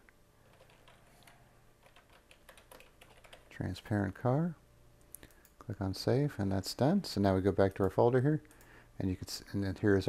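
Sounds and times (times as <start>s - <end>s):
keyboard typing: 0.4s - 3.5s.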